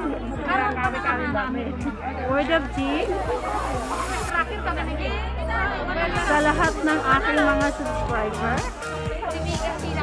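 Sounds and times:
background music with low beat: 0.0s - 4.7s, 6.1s - 10.0s
people talking: 0.0s - 10.0s.

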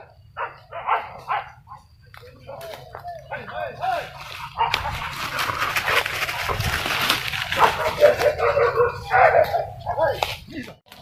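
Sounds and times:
dogs yelping and barking: 0.0s - 2.0s, 3.2s - 10.1s.

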